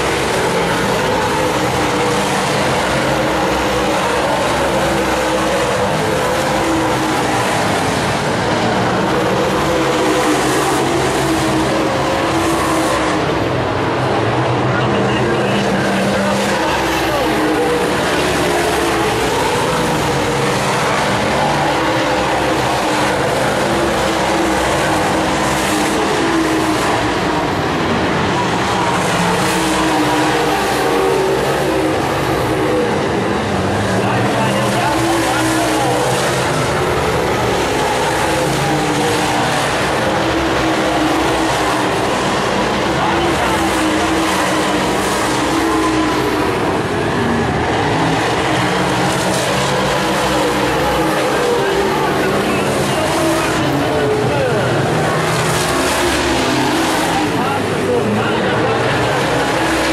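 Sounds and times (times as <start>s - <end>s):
race car engines roaring: 0.0s - 59.9s.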